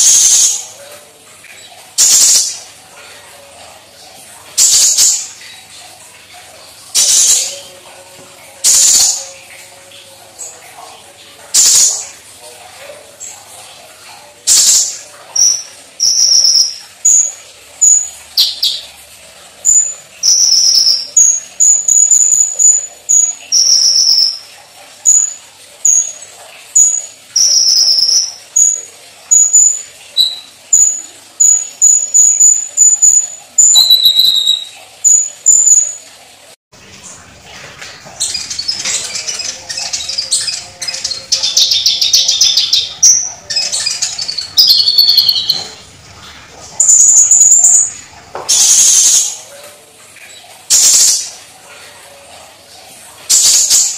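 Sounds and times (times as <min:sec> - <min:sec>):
rapid high bird twittering: 0:14.5 - 0:18.8, 0:19.7 - 0:24.5, 0:26.8 - 0:36.0, 0:37.8 - 0:49.4.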